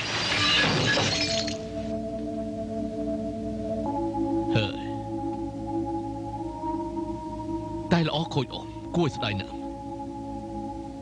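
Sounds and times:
glass shattering: 0.0 - 1.7.

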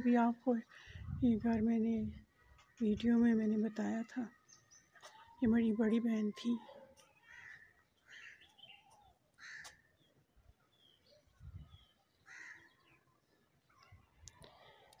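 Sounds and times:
distant bird calls: 4.1 - 14.9.

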